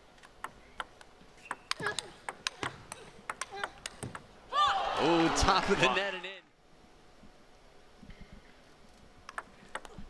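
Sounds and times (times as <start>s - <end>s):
table tennis ball clicking: 0.2s - 4.3s, 9.2s - 10.0s.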